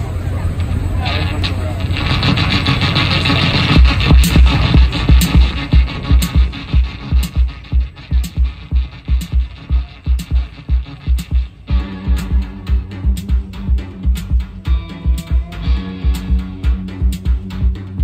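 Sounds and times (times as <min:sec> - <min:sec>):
deep bass pulse: 0:01.5 - 0:18.0.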